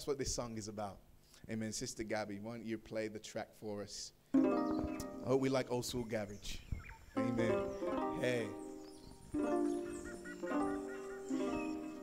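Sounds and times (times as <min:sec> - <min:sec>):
instrumental backing track: 0:04.4 - 0:05.6, 0:06.6 - 0:12.0.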